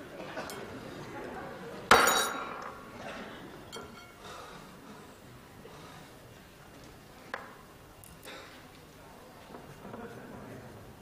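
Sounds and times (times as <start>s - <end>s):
tableware clinking: 1.9s - 2.8s, 3.6s - 4.2s.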